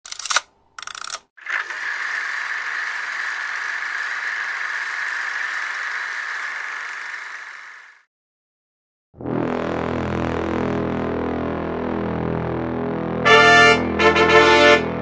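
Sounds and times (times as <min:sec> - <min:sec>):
film projector clacks: 0:00.1 - 0:08.0
film projector whirring rattle: 0:00.8 - 0:08.0.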